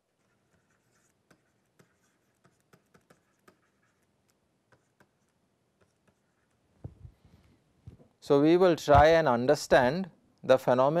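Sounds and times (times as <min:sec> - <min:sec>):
stylus tapping and scratching on tablet: 0:00.0 - 0:08.0.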